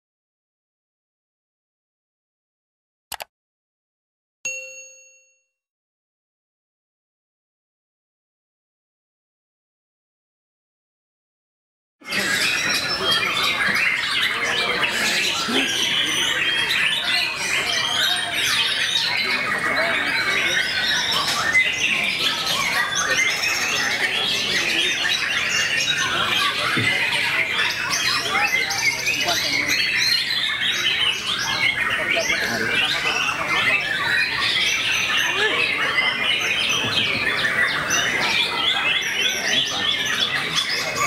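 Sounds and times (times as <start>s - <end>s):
human voices: 12.0s - 41.0s
birds singing whistles and trills: 12.1s - 41.0s.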